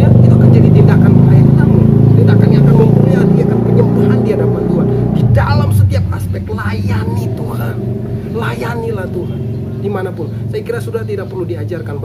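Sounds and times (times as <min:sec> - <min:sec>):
low motor drone: 0:00.0 - 0:12.0.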